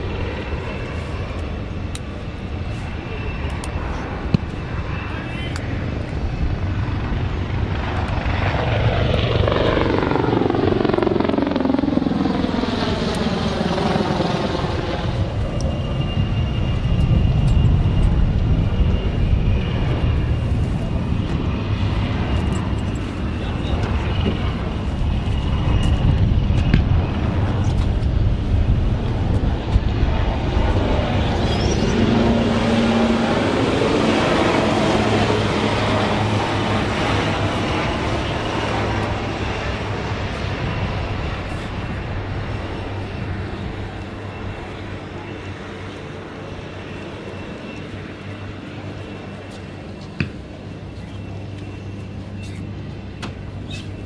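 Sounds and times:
helicopter flying past: 0.0s - 54.0s
low aircraft rumble: 0.0s - 54.0s.

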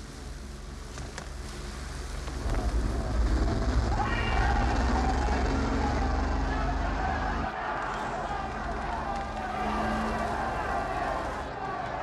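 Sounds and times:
bus engine rumbling: 2.4s - 12.0s.

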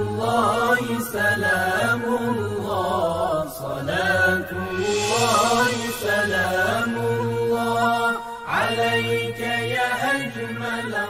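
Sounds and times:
voice chanting slow melody: 2.7s - 10.8s.

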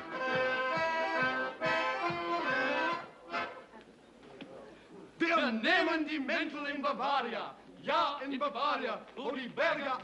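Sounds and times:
accordion folk dance tune: 0.0s - 3.8s.

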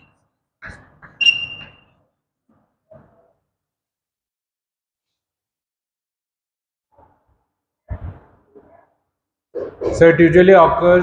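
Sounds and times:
chalk squeaking: 0.6s - 2.0s.

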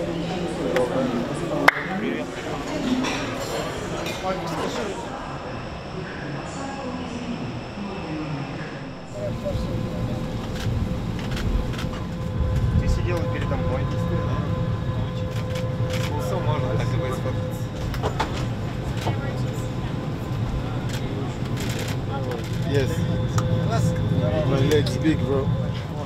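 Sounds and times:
passengers chattering: 0.0s - 26.0s
aircraft low hum: 2.2s - 26.0s
steady tone: 5.0s - 26.0s.

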